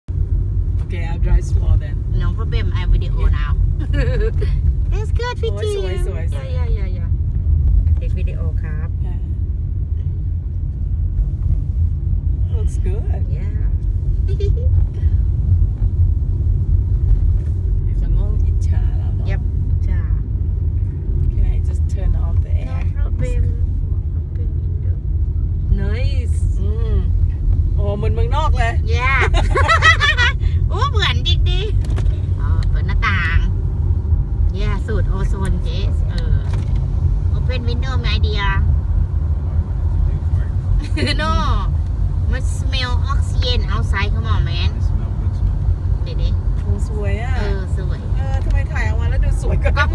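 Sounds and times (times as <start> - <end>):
car driving on paved road: 0.0 - 49.9
voice: 0.9 - 7.1, 8.0 - 9.2, 12.5 - 13.7, 14.3 - 15.1, 17.9 - 20.2, 21.3 - 25.0, 25.7 - 33.5, 34.5 - 36.6, 37.4 - 38.6, 40.0 - 41.7, 42.3 - 45.5, 46.1 - 49.9.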